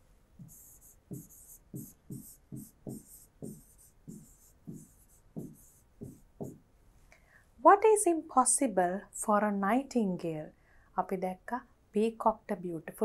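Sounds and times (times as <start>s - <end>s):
stylus scratching on screen: 0.4s - 6.6s.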